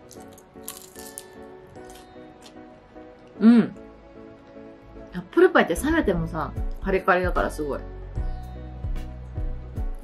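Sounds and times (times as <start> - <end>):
crunchy chewing: 0.0 - 2.6
soft background music: 0.0 - 10.0.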